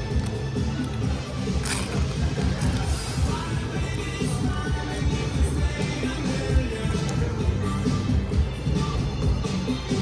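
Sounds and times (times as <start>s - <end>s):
potato chip crunch: 0.0s - 3.5s
background music: 0.0s - 10.0s.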